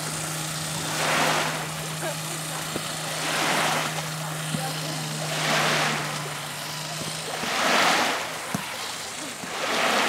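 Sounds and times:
shallow water washing over sand: 0.0s - 10.0s
steady low hum: 0.0s - 10.0s.

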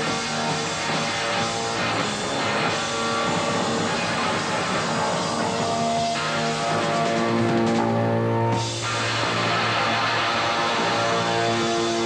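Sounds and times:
electric guitar: 0.0s - 12.0s
punk rock band playing: 0.0s - 12.0s.

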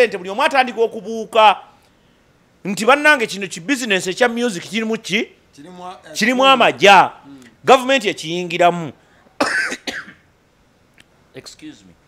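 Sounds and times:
man coughing: 9.4s - 10.3s.

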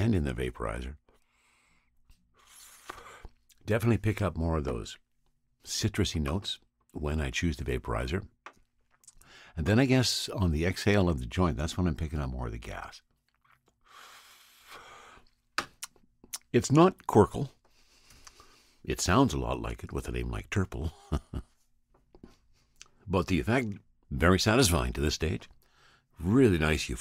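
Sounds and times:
faint breathing: 1.1s - 3.4s, 9.2s - 9.6s, 13.8s - 15.4s, 17.6s - 18.9s, 25.6s - 26.2s.

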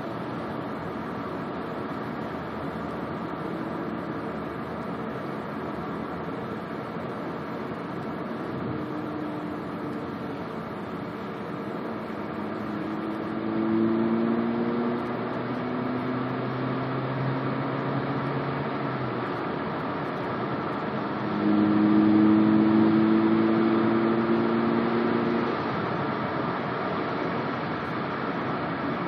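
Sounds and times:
car engine accelerating: 0.0s - 28.9s
road noise: 0.0s - 29.0s.

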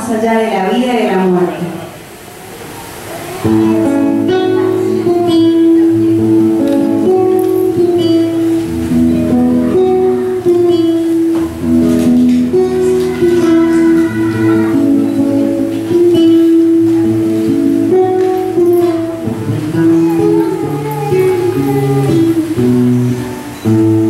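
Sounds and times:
classical guitar chords: 2.7s - 24.0s.

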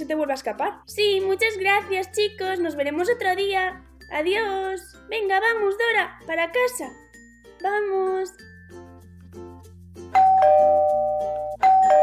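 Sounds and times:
soft background music: 0.0s - 12.0s
two-tone doorbell chime: 10.2s - 12.0s.

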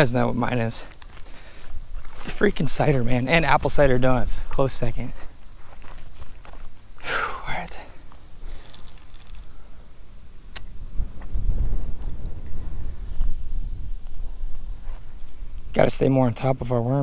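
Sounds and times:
sharp click: 10.5s - 10.7s.

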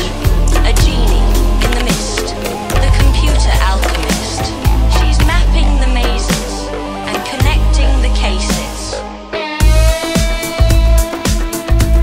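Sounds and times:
synthesizer lines: 0.6s - 6.8s.

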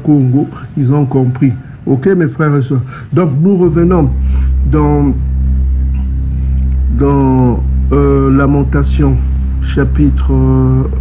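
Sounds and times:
loud steady low drone: 2.9s - 11.0s.

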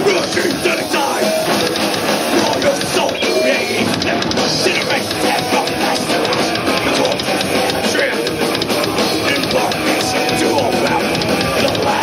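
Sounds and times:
distorted electric guitars: 0.0s - 12.0s
drums: 0.0s - 12.0s.

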